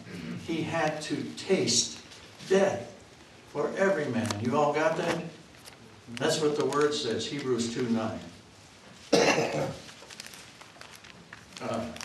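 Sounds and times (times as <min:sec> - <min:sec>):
man coughing: 0:09.1 - 0:09.8.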